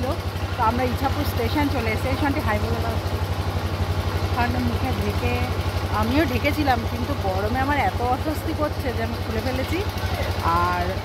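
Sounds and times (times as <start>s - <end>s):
small engine idling: 0.0s - 11.0s
voices: 0.0s - 11.0s.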